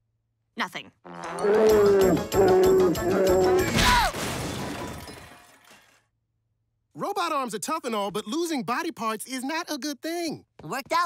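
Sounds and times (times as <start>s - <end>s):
falling cry: 1.1s - 4.2s
cartoon shattering crash: 3.7s - 6.0s.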